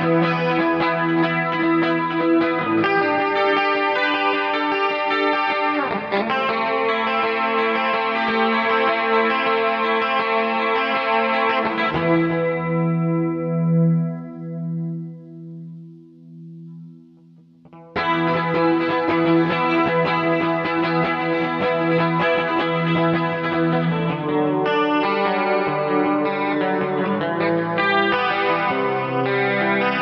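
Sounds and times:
instrumental rock music: 0.0s - 30.0s.

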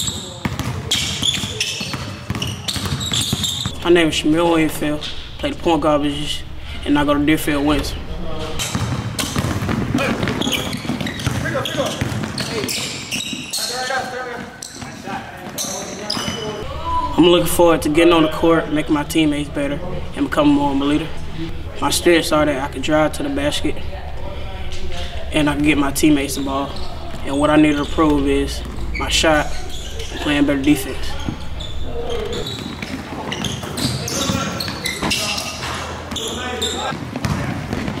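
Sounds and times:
sneaker squeaks: 0.0s - 3.9s, 7.7s - 17.4s, 24.1s - 38.0s
basketball bouncing on wooden floor: 0.4s - 3.8s, 8.6s - 13.0s, 36.9s - 38.0s
indistinct voices: 3.7s - 14.2s, 14.9s - 36.9s.

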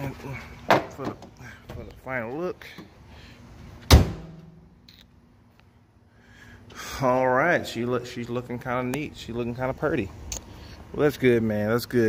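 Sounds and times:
car hood slamming shut: 3.8s - 4.6s.

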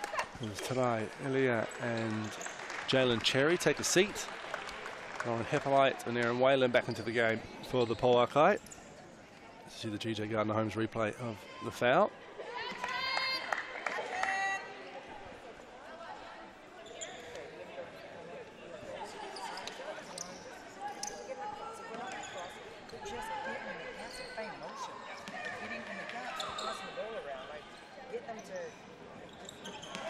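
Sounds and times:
people chattering: 0.0s - 30.0s.

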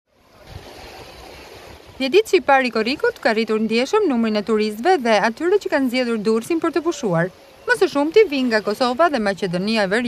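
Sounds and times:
surf: 0.1s - 10.0s
wind: 0.1s - 10.0s.

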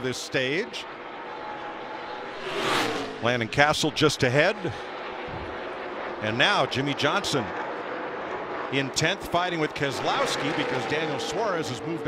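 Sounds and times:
race car engines droning: 0.0s - 12.0s
race car passing by: 0.7s - 12.0s.

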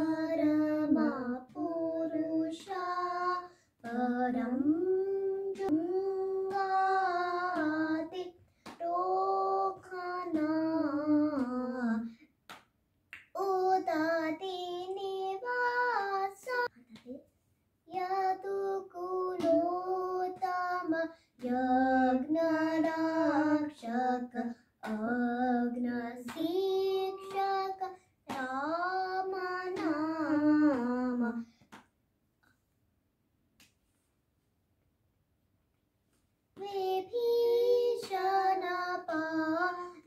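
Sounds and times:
girl singing unaccompanied: 0.0s - 12.2s, 13.3s - 31.5s, 36.6s - 40.0s.

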